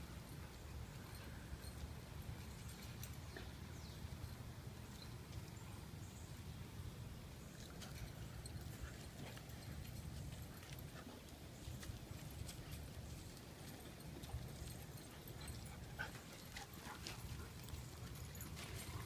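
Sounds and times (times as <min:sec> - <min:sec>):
dog paws on dirt: 0:07.5 - 0:19.0.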